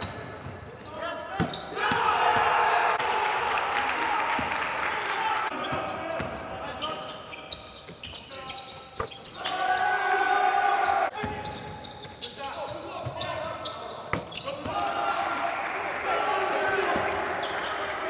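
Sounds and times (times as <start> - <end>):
sneakers squeaking: 0.0 - 2.6, 3.8 - 15.1, 16.9 - 18.0
voices calling out: 8.2 - 11.5.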